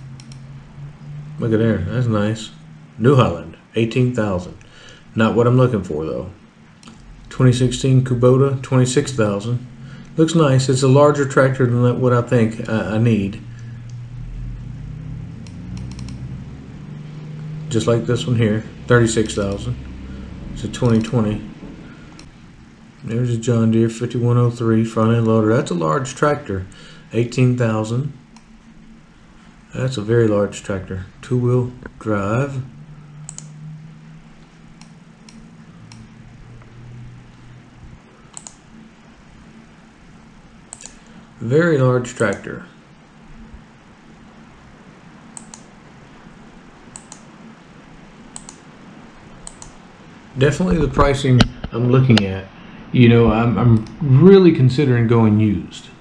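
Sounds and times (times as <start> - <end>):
computer mouse clicking: 0.0 - 0.5, 15.4 - 16.3, 20.8 - 21.2, 22.1 - 22.3, 33.2 - 33.6, 34.5 - 36.2, 38.3 - 38.7, 40.7 - 41.2, 45.4 - 45.7, 46.9 - 47.3, 48.3 - 48.6, 49.3 - 49.8
steady low hum: 0.0 - 56.0
laptop keyboard clicks: 38.3 - 38.6, 48.3 - 48.6.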